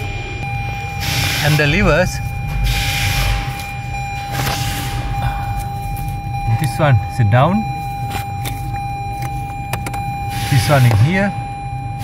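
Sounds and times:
low hum: 0.0 - 12.0
thin steady whine: 0.0 - 12.0.

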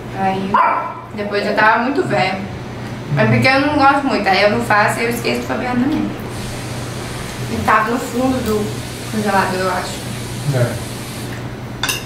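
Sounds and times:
fork clinking against plate: 11.8 - 12.0.

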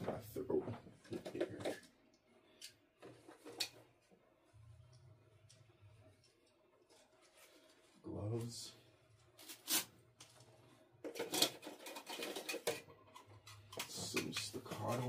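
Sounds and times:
gear clattering and rustling: 11.0 - 15.0.

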